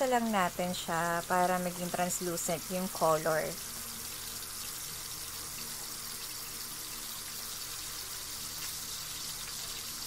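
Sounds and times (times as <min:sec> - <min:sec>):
onions sizzling in hot oil: 0:00.0 - 0:10.0.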